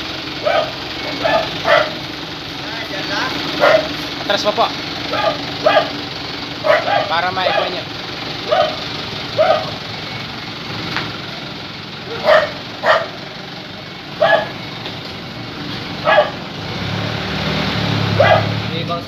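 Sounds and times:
dog barking: 0.4 - 2.0, 3.6 - 4.0, 5.1 - 6.0, 6.6 - 7.8, 8.4 - 8.8, 9.4 - 9.8, 12.1 - 13.2, 14.2 - 14.6, 16.0 - 16.4, 18.2 - 18.6.

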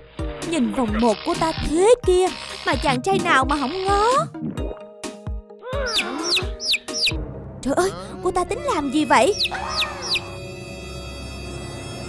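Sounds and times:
background music with a beat: 2.9 - 7.4
chicks peeping: 5.9 - 7.2, 9.3 - 10.4.

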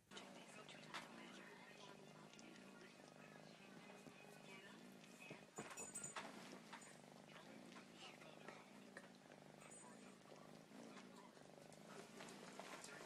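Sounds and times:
cat purring: 0.0 - 13.0.

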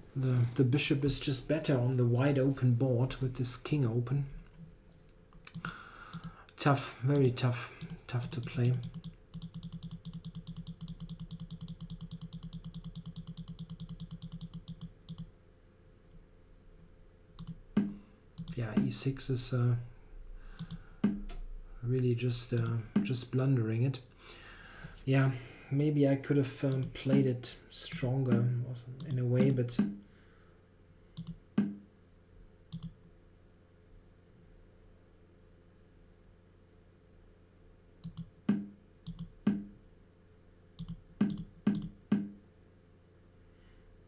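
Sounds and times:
computer mouse clicks: 7.8 - 15.3, 17.4 - 18.9, 20.6 - 21.4, 26.7 - 27.2, 31.2 - 31.8, 32.7 - 33.0, 38.0 - 39.7, 40.8 - 42.3
light mouse clicks: 31.2 - 31.8, 32.7 - 33.0, 40.8 - 42.3.

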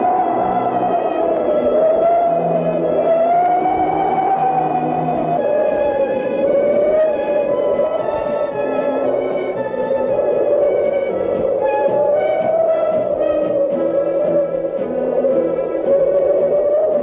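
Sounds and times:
theremin-like gliding tone: 0.0 - 17.0.

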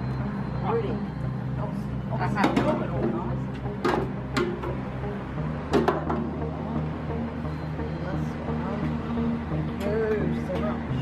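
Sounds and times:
background music with low notes: 0.0 - 11.0.

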